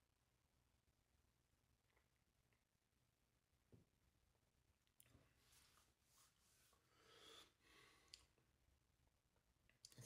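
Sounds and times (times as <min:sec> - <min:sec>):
person breathing faintly: 0:05.5 - 0:08.4.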